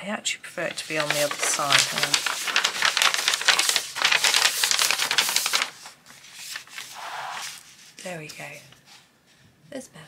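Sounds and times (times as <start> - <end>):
paper rustling and scraping: 0.6 - 9.1
soft brush of paper: 0.7 - 9.4.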